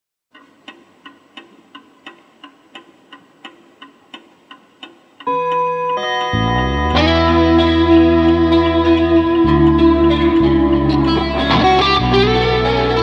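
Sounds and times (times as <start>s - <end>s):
soft regular ticking: 0.3s - 9.5s
electric guitar chord: 5.3s - 13.0s
bass guitar: 5.4s - 13.0s
rock band playing: 5.4s - 13.0s.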